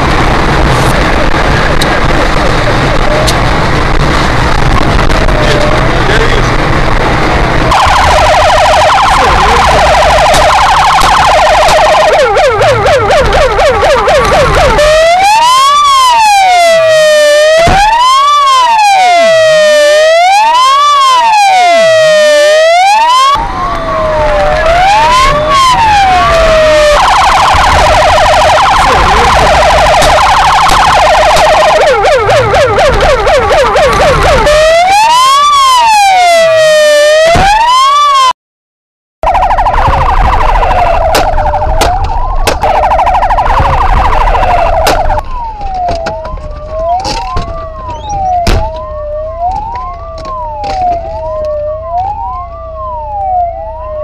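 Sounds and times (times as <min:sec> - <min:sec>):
police siren wailing and yelping: 0:01.4 - 0:06.2, 0:07.6 - 0:38.3, 0:39.2 - 0:54.0.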